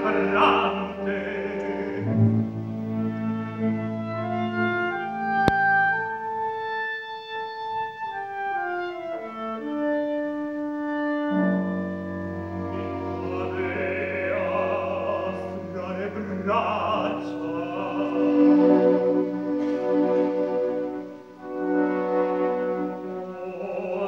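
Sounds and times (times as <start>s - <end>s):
operatic orchestra music: 0.0s - 24.0s.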